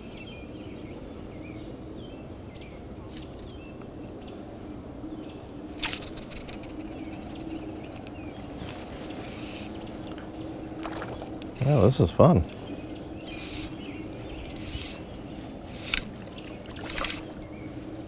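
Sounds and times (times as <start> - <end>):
birds chirping: 0.0 - 18.0
low background rumble: 0.0 - 18.0
sharp click: 5.8 - 6.7, 15.8 - 16.1.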